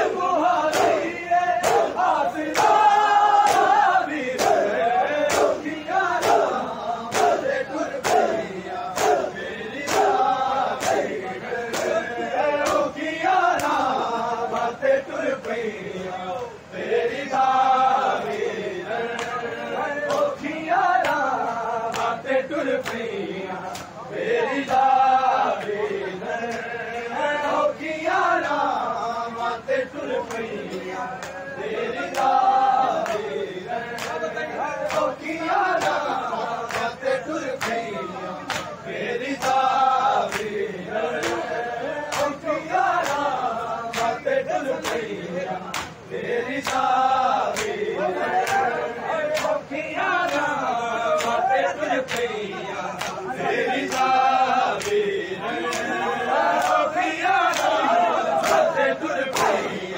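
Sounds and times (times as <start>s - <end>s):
men chanting in unison: 0.0s - 59.9s.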